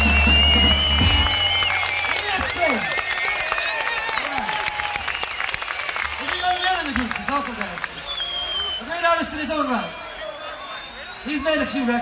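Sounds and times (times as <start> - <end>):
audience applauding: 0.0 - 12.0
voices in crowd: 1.4 - 12.0.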